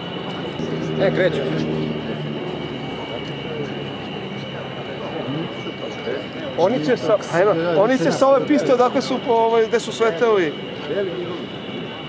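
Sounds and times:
propeller plane engine drone: 0.0s - 12.0s
thin high whine: 0.0s - 12.0s.

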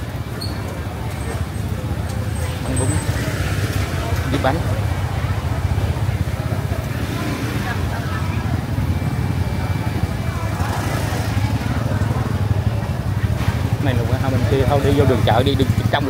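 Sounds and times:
scooter engines rumbling: 0.0s - 16.0s
voices chattering: 0.0s - 16.0s.

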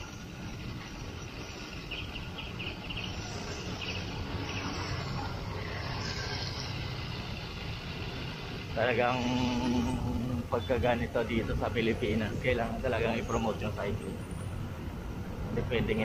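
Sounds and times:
wind: 0.0s - 16.0s.

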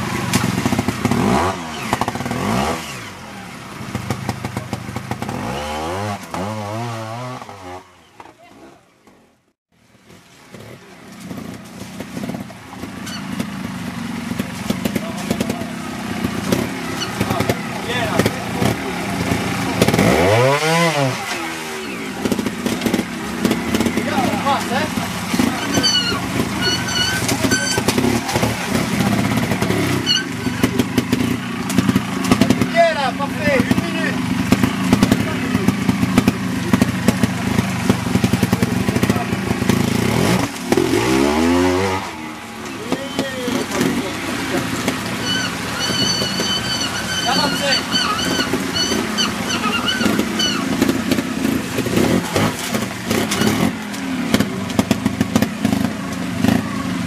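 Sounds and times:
motorcycle engine revving: 0.0s - 9.2s, 10.0s - 57.0s.

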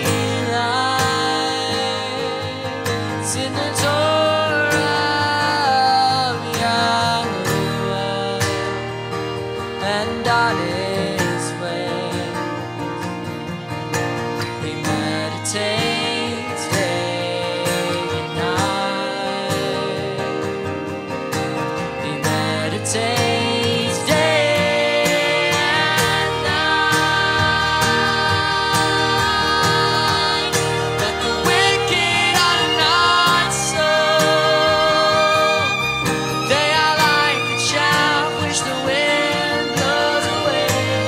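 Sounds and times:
strummed acoustic guitar: 0.0s - 41.0s
violin gliding melody: 0.0s - 41.0s.

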